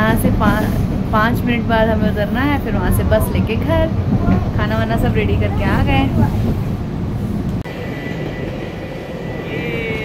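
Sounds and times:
train passing with high whine: 0:00.0 - 0:10.0.

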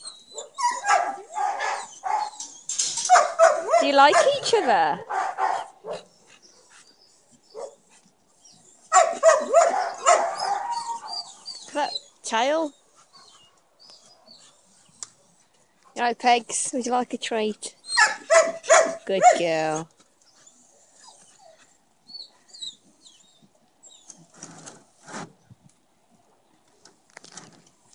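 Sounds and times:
dogs yipping and whining: 0:00.0 - 0:15.3, 0:17.8 - 0:24.3
dogs barking: 0:00.3 - 0:02.4, 0:03.0 - 0:06.1, 0:07.5 - 0:07.8, 0:08.9 - 0:11.3, 0:18.0 - 0:19.5.

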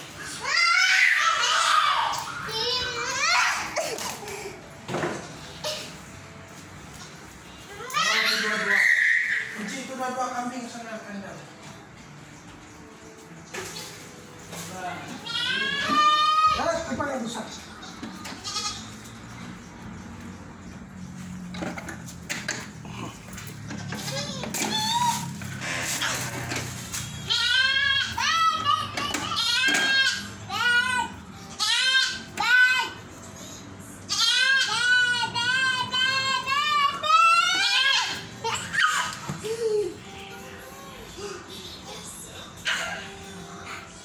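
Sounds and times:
goat bleating: 0:15.2 - 0:16.6, 0:18.2 - 0:19.2, 0:27.3 - 0:29.6, 0:34.1 - 0:38.7.

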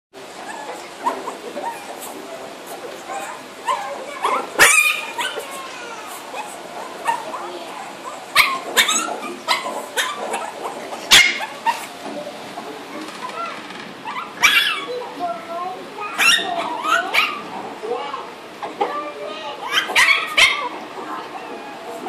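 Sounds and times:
small dog barking: 0:03.1 - 0:05.6, 0:06.3 - 0:07.4, 0:08.0 - 0:11.9, 0:14.0 - 0:14.9, 0:16.1 - 0:17.5, 0:19.6 - 0:20.8.

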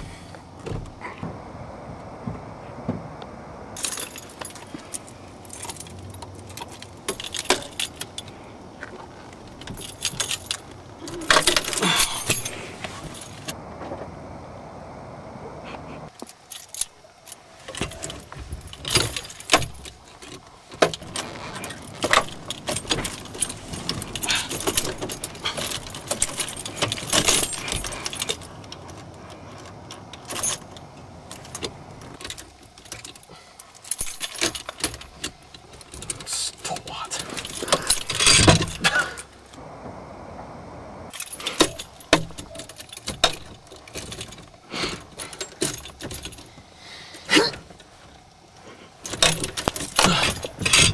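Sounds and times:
steering wheel lock rattling: 0:17.7 - 0:33.2.

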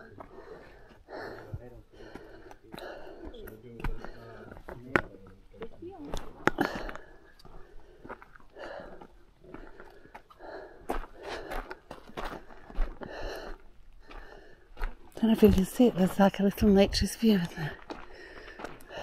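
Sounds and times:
footsteps crunching on rock and gravel: 0:05.6 - 0:13.1, 0:14.0 - 0:19.0.

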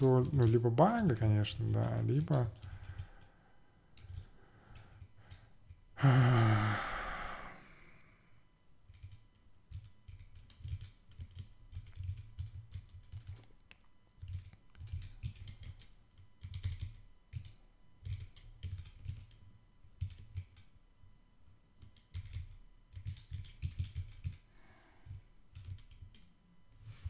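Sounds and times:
computer keyboard typing: 0:00.0 - 0:05.8, 0:08.8 - 0:20.8, 0:21.8 - 0:26.4.

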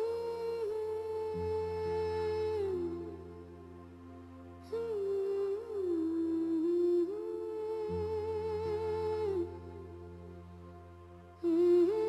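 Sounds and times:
hummed melody: 0:00.0 - 0:12.0.

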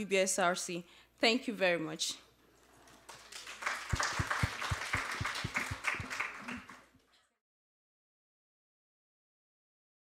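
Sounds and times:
audience applauding: 0:02.9 - 0:07.0.

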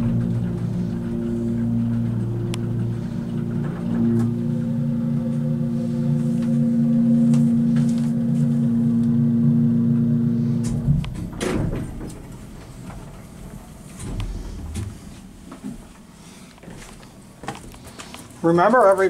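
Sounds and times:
elevator pump motor humming: 0:00.0 - 0:15.9.

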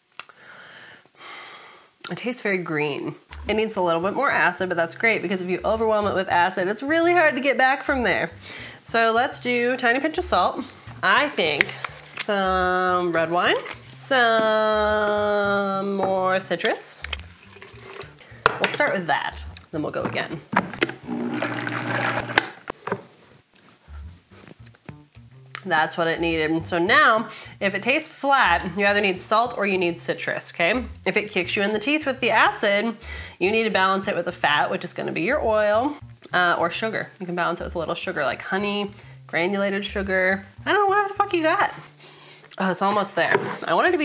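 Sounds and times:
person breathing through mouth: 0:00.3 - 0:02.0, 0:08.3 - 0:08.8, 0:17.6 - 0:18.5, 0:33.0 - 0:33.4, 0:39.0 - 0:39.3, 0:41.8 - 0:42.6
blender motor whirring: 0:20.9 - 0:22.6.

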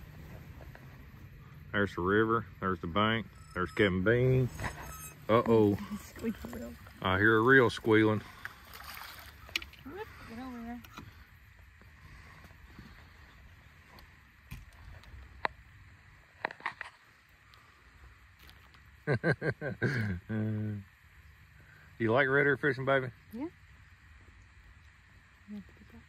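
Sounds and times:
person laughing: 0:19.1 - 0:20.6.

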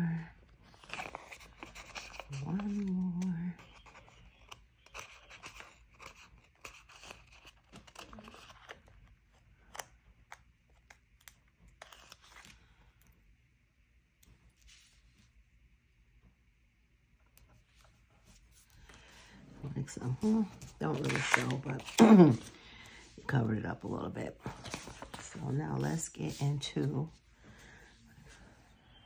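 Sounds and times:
paper handled: 0:00.7 - 0:08.9, 0:17.7 - 0:27.2
stickers being peeled: 0:00.8 - 0:13.1.

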